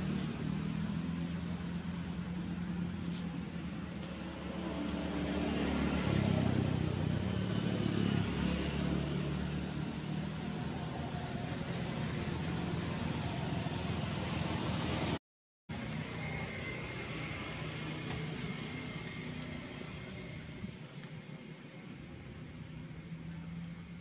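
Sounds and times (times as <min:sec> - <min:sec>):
low engine-like hum: 0:00.0 - 0:24.0
steady hiss: 0:15.7 - 0:24.0.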